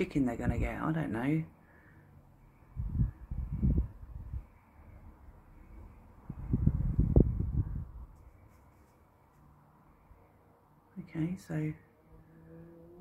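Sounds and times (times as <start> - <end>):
low rumbling on microphone: 2.6 - 4.5, 5.6 - 8.2.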